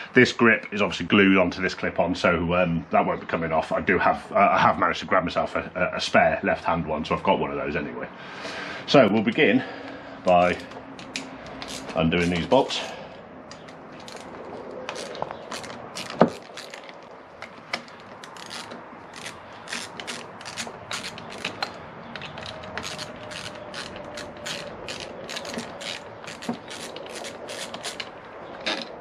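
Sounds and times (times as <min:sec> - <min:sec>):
hand ratchet clicking: 0:10.6 - 0:12.8, 0:14.9 - 0:29.0.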